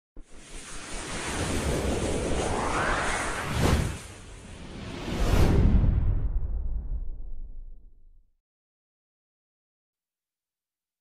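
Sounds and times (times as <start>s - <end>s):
hissing rising sweep: 0.2s - 5.6s
sharp whoosh: 0.2s - 7.7s.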